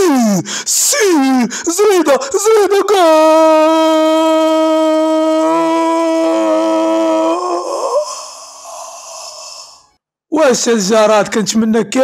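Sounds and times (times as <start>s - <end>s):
man shouting: 0.0s - 7.5s.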